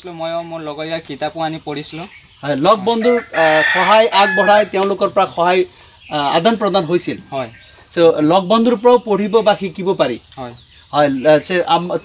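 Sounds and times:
man talking: 0.0 - 12.0
rooster crowing: 3.0 - 4.8.

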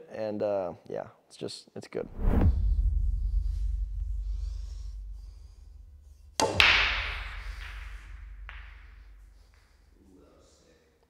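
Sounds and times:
sharp hits: 2.1 - 10.0.

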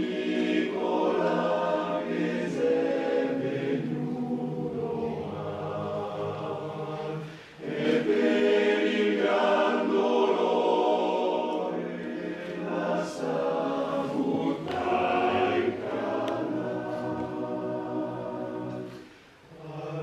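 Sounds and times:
male choir singing in harmony: 0.0 - 20.0.

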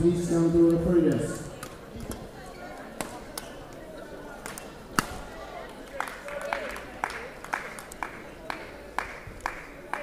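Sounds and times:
low murmur of hall: 0.0 - 10.0
rackets hitting shuttlecock: 4.4 - 5.2.

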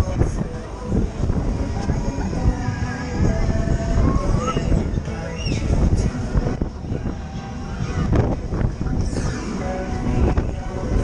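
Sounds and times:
fairground ride rumble: 0.0 - 11.0
wind buffeting microphone: 0.0 - 11.0.

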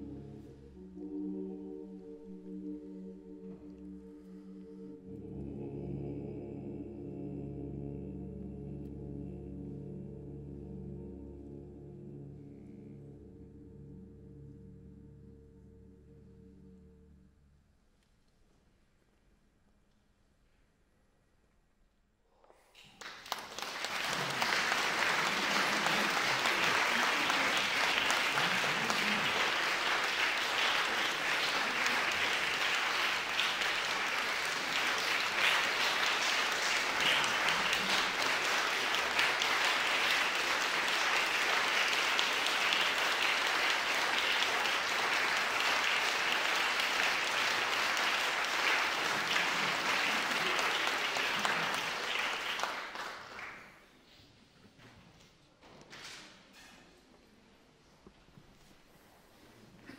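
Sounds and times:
audience applauding: 22.8 - 53.8.

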